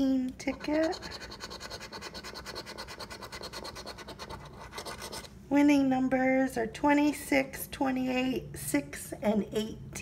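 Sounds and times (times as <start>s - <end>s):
coin scratching lottery ticket: 0.5s - 5.3s.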